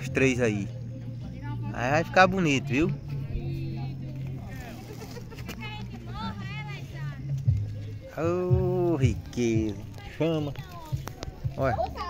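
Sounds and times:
people talking faintly: 0:00.0 - 0:12.0.

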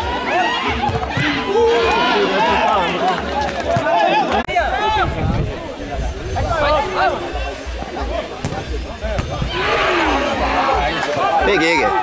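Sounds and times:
people shouting: 0:00.0 - 0:03.0, 0:09.4 - 0:12.0
football being kicked: 0:00.8 - 0:01.4, 0:08.4 - 0:09.5.

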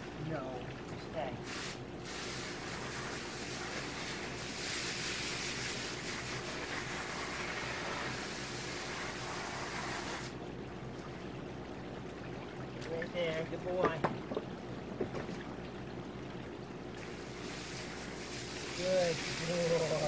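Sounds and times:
garden hose spraying water: 0:01.2 - 0:10.4, 0:17.0 - 0:20.0.

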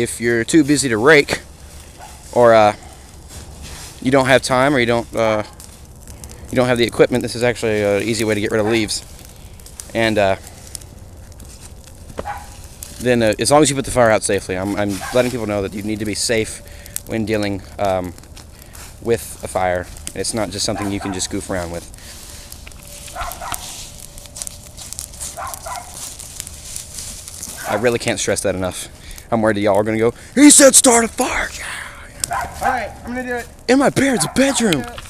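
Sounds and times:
bonfire of leaves crackling: 0:00.0 - 0:35.0.

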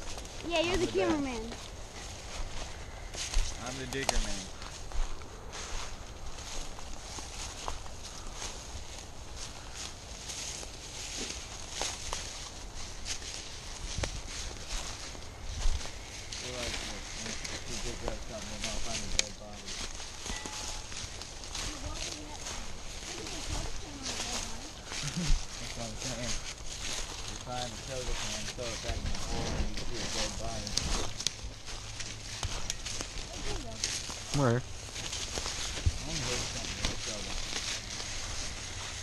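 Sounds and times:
footsteps crunching dry leaves: 0:00.0 - 0:39.0
faint low talk: 0:16.3 - 0:26.6.

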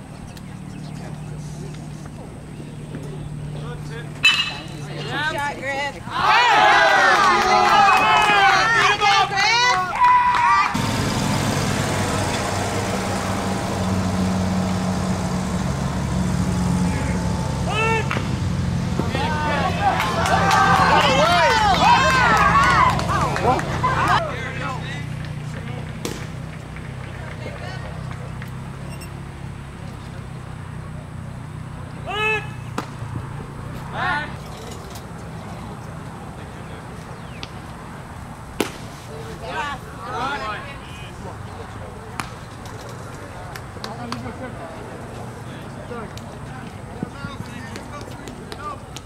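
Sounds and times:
faint voices: 0:00.0 - 0:10.0
outdoor ambience: 0:00.0 - 0:49.0
baseball popping into leather mitt: 0:26.0 - 0:26.4, 0:32.8 - 0:33.0, 0:38.6 - 0:39.0.

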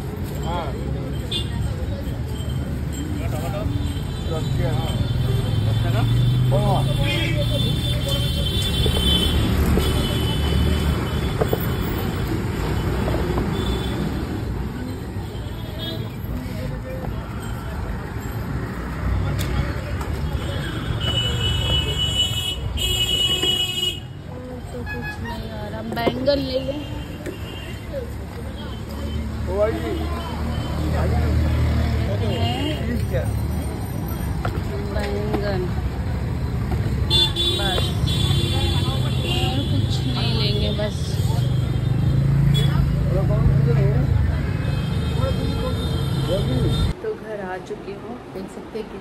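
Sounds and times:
road traffic rumble: 0:00.0 - 0:49.0
people's voices: 0:24.0 - 0:49.0.

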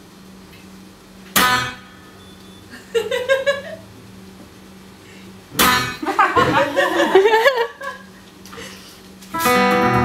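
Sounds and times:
faint steady hum: 0:00.0 - 0:10.0
guitar chord strummed: 0:01.3 - 0:02.4, 0:05.6 - 0:06.1, 0:09.3 - 0:10.0.

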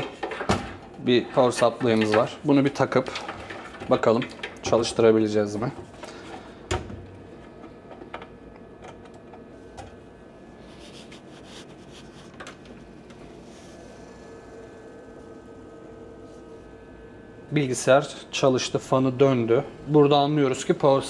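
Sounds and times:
computer fans whirring: 0:00.0 - 0:21.0.

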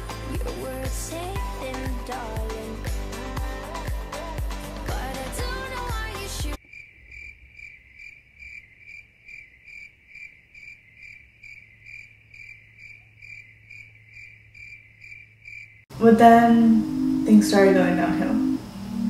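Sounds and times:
music: 0:00.0 - 0:06.6, 0:16.6 - 0:19.0
cricket chirping: 0:06.6 - 0:15.9.

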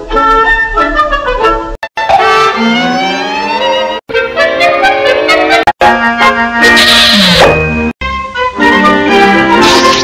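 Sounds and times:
cartoon orchestral music: 0:00.0 - 0:10.0
hissing sound effect: 0:09.5 - 0:10.0.

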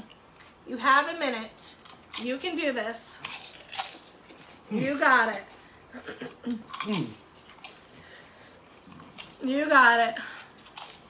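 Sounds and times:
wet chewing sounds: 0:03.2 - 0:11.0.

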